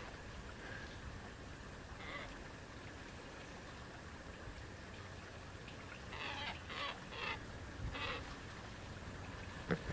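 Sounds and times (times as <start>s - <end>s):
bird calling: 2.0s - 2.4s, 6.1s - 8.3s.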